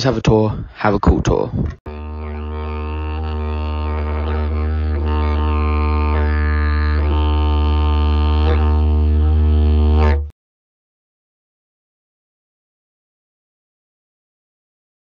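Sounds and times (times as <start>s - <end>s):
didgeridoo drone: 1.9s - 10.3s.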